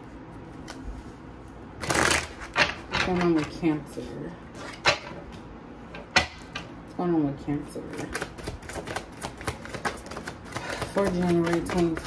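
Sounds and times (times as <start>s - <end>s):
cards being shuffled: 1.8s - 2.6s, 7.9s - 12.0s.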